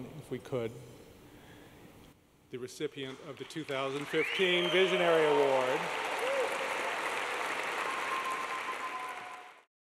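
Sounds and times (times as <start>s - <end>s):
audience applauding: 3.0s - 9.7s.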